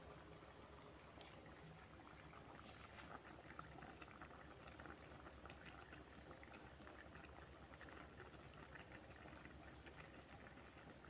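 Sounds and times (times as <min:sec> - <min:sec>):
stew bubbling in a pan: 0:00.0 - 0:11.0.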